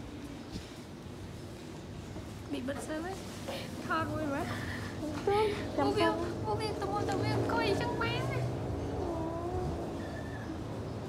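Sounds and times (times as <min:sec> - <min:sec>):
woman's voice: 0:02.5 - 0:09.8.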